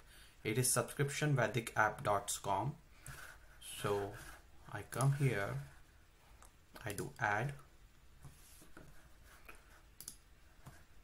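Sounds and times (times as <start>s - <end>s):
computer mouse clicks: 10.0s - 10.8s.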